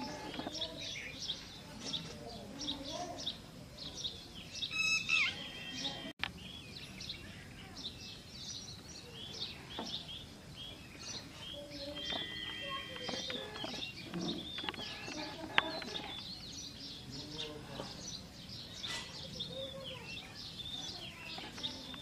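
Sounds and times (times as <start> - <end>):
small birds chirping: 0.0 - 22.0.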